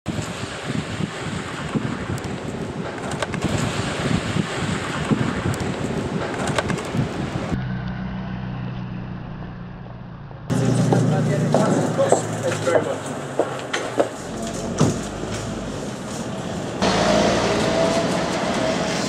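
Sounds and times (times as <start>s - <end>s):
wind buffeting microphone: 0.1s - 7.6s.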